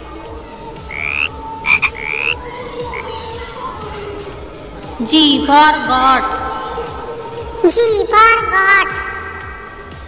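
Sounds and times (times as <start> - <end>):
frog croaking: 0.6 - 7.6.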